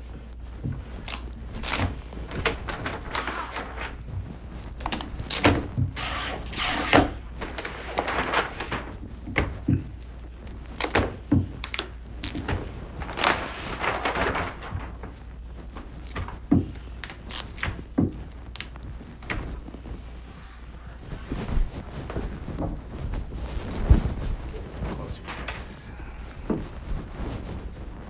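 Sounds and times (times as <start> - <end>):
vinyl film rustling and rubbing: 0.0 - 28.0.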